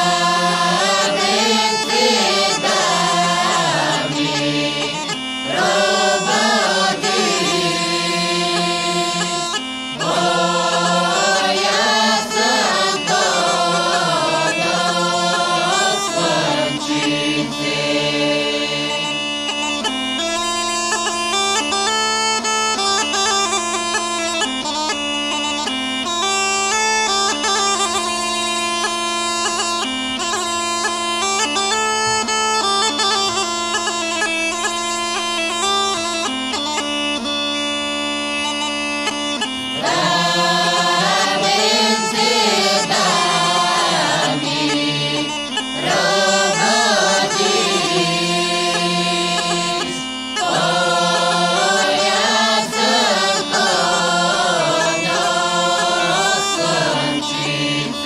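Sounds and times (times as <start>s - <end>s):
group of folk singers: 0.0s - 20.0s, 39.4s - 58.0s
bagpipe drone: 0.0s - 58.0s
bagpipe ornamented melody: 0.0s - 58.0s.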